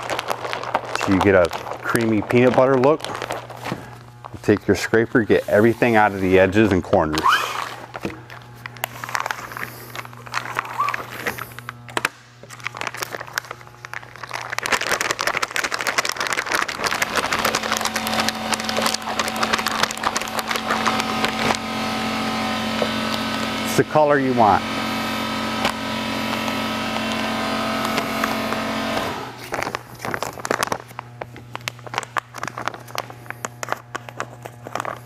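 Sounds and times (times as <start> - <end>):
plastic crinkling and rustling: 0.0 - 23.9, 25.2 - 35.0
steady machine hum: 0.0 - 35.0.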